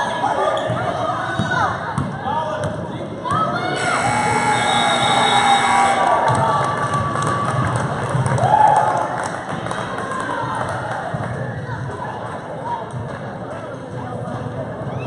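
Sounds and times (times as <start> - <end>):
scoreboard buzzer: 3.8 - 6.7
crowd cheering: 3.8 - 11.3.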